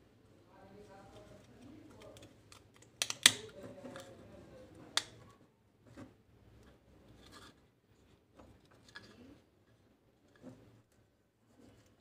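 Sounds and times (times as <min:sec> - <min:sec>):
plastic parts clicking: 0:01.9 - 0:04.1.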